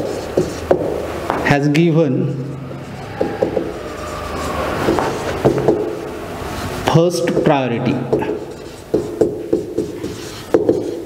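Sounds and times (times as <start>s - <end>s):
marker writing on whiteboard: 0.0s - 11.0s
marker squeaks: 2.3s - 6.7s, 8.1s - 11.0s.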